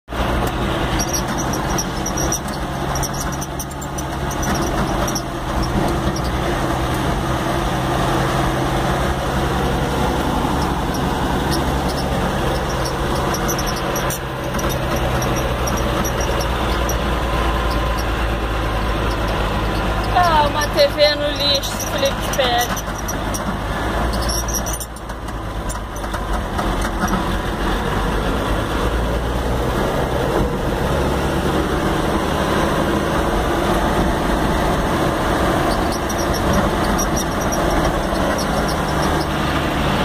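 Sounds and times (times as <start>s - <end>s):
engine low drone: 0.0s - 40.0s
road noise: 0.0s - 40.0s.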